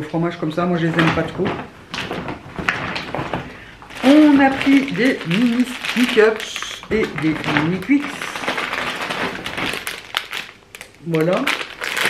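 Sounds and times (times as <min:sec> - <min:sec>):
plastic packaging crinkling: 0:00.6 - 0:12.0.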